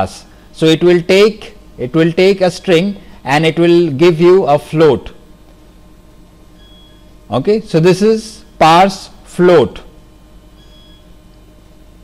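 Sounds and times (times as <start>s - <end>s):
low steady hiss and hum: 0.0s - 12.0s.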